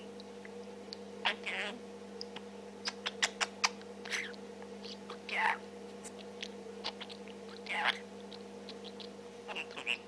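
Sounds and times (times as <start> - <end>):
budgerigar chirping: 6.4 - 8.1, 8.7 - 10.0.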